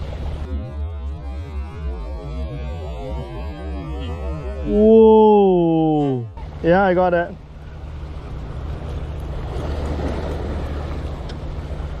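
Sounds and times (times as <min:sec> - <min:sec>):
small waves washing against rocks: 0:09.3 - 0:11.3.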